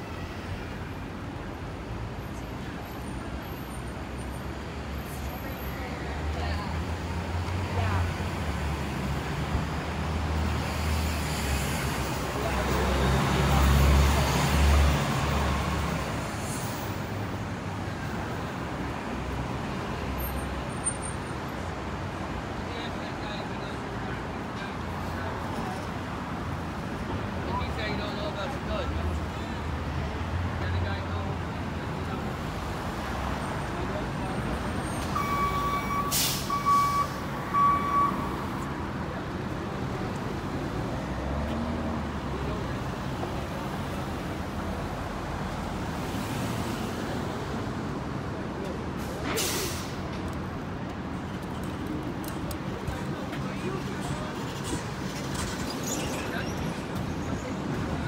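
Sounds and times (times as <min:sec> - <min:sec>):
street traffic rumble: 0:00.0 - 0:58.0
air brakes hissing: 0:35.5 - 0:37.3, 0:49.0 - 0:50.2.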